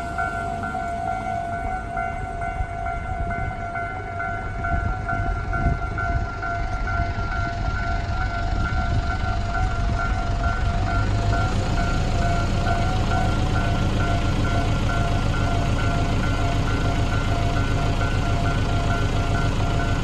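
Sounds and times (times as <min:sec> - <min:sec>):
level crossing bell ringing: 0:00.0 - 0:20.0
vehicle engine rumble: 0:00.0 - 0:20.0.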